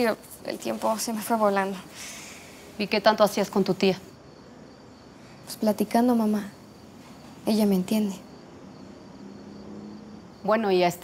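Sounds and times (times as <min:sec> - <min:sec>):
woman's voice: 0:00.0 - 0:02.2, 0:02.8 - 0:04.1, 0:05.5 - 0:06.6, 0:07.4 - 0:08.3, 0:10.4 - 0:11.0.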